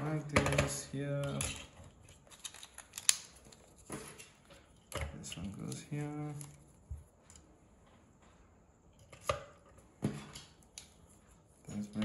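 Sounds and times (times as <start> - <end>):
faint handling noise: 0.6 - 12.0.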